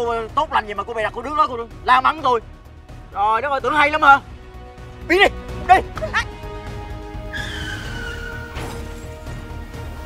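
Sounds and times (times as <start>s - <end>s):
scooter tyres screeching: 7.3s - 9.0s.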